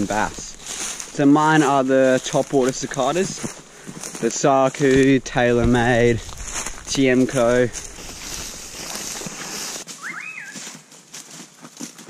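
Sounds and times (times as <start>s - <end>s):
boots stepping through long grass: 0.0s - 12.0s.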